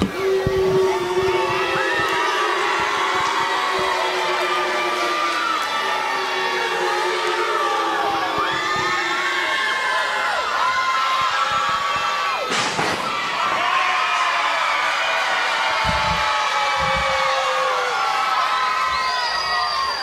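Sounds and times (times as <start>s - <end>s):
children yelling: 0.0s - 20.0s
crowd cheering and shouting: 0.0s - 20.0s.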